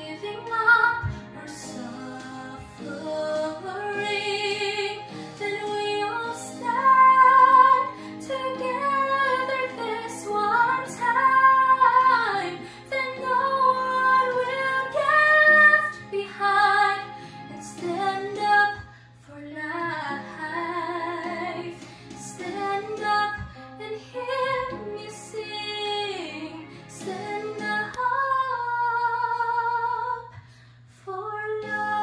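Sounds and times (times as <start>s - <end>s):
soft held chords accompaniment: 0.0s - 32.0s
woman singing ballad: 0.0s - 32.0s.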